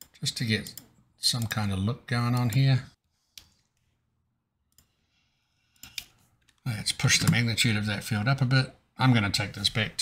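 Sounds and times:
computer mouse clicks: 4.7 - 5.0, 5.7 - 6.6.

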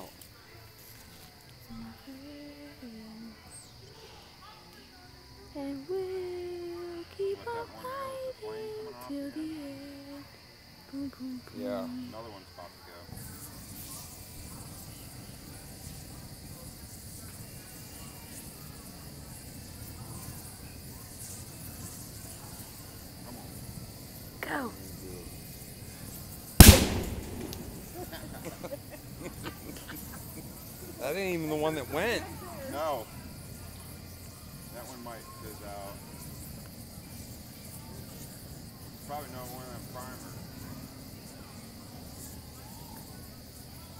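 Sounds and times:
crickets chirping: 0.0 - 43.9
faint high hiss: 0.0 - 43.9
fire crackling: 13.1 - 42.5.

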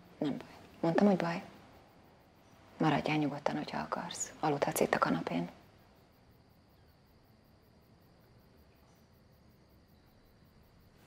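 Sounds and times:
faint steady high hum: 0.0 - 11.0.

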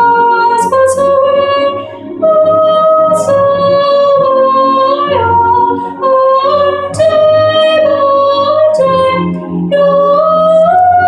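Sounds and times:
high voice singing: 0.0 - 11.0
soft low accompaniment: 0.0 - 11.0.

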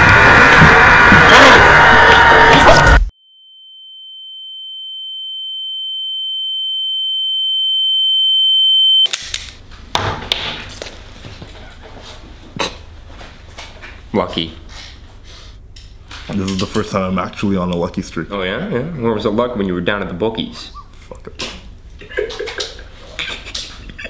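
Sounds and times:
loud noisy passage: 0.0 - 3.1.

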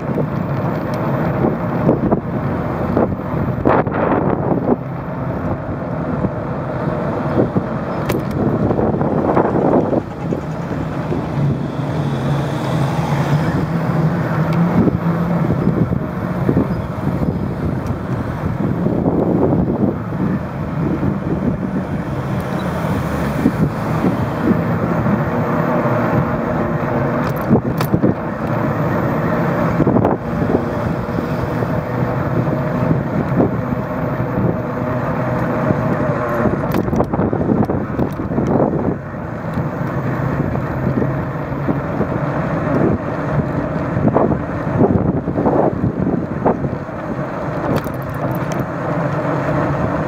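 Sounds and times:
tyres rolling on asphalt: 0.0 - 50.0
wind on microphone: 0.0 - 50.0
bicycle knocks and rattles: 7.8 - 11.3.

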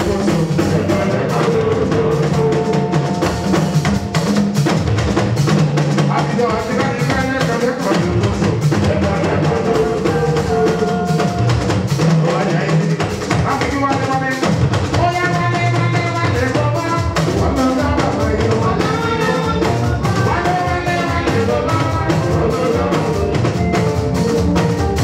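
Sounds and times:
drums and percussion beat: 0.0 - 25.0
live band music: 0.0 - 25.0.

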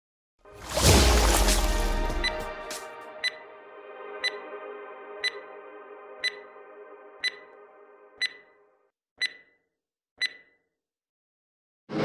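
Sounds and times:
sustained music chord: 0.5 - 8.8
sharp electronic pings: 8.2 - 8.6, 10.2 - 10.6.

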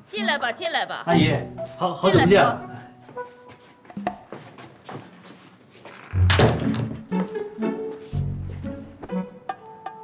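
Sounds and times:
background music with low strings: 1.1 - 4.2, 6.2 - 10.0
door shutting with thud: 6.1 - 7.0.

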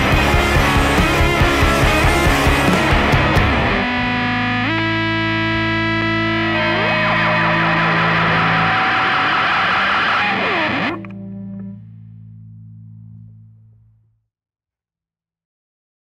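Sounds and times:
distorted electric guitar chord: 0.0 - 14.0.

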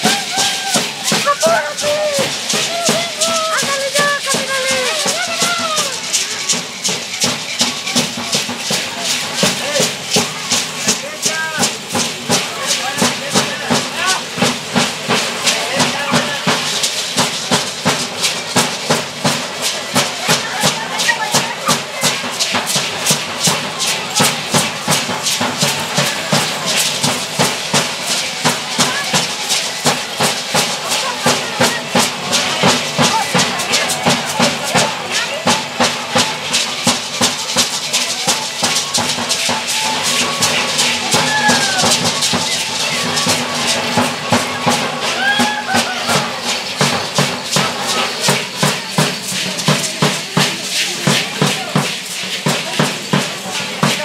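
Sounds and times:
crowd chatter: 0.0 - 54.0
hand rattles shaken in rhythm: 0.0 - 54.0.

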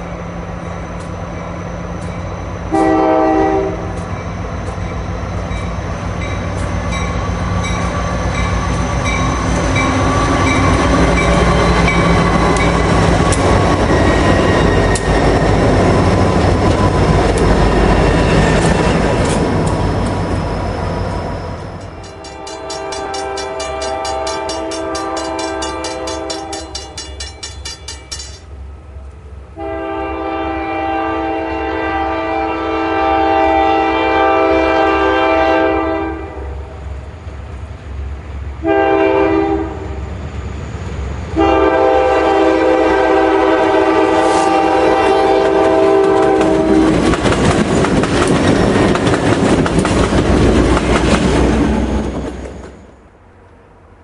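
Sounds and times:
train rumbling: 0.0 - 54.0
locomotive air horn blasts: 2.7 - 4.0, 22.1 - 26.7, 29.6 - 36.6, 38.6 - 39.9, 41.4 - 47.0.

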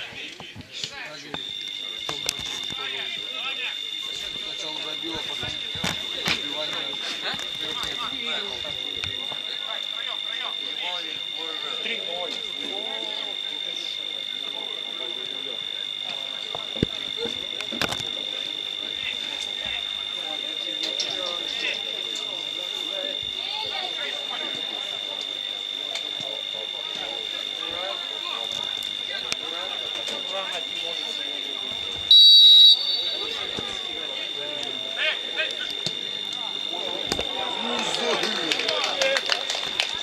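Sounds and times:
players calling out: 0.0 - 40.0
steady high-pitched whine: 0.0 - 40.0
referee's whistle blast: 32.1 - 33.5.

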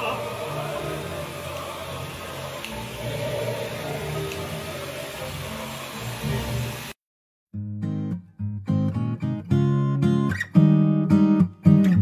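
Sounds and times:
background music: 0.0 - 6.9
hair dryer blowing: 0.0 - 7.0.

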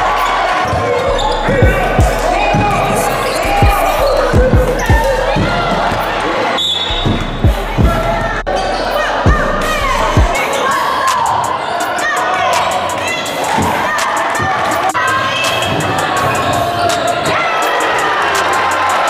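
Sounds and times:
voices in large gym: 0.0 - 19.0.

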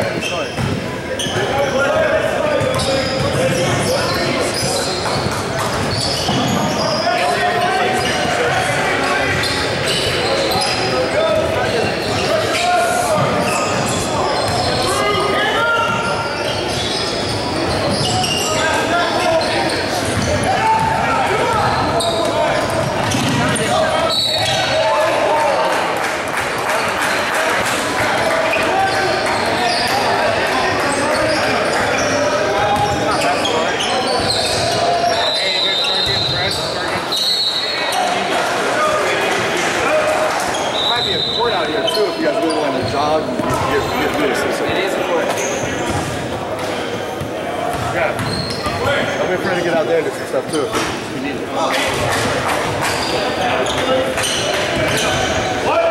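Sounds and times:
sneakers squeaking: 0.0 - 25.5, 27.6 - 38.3, 40.4 - 49.8, 50.4 - 55.9
echoing chatter and shouts: 0.0 - 55.9.

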